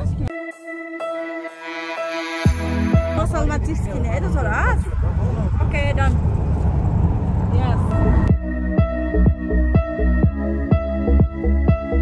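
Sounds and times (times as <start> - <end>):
car interior rumble: 3.0 - 8.5
woman speaking: 3.2 - 5.0.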